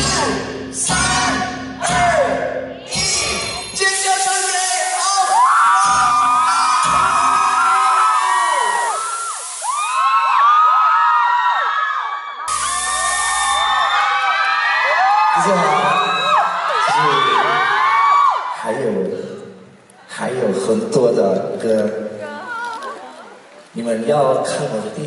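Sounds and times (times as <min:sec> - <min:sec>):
crowd screaming and cheering: 0:02.9 - 0:20.7.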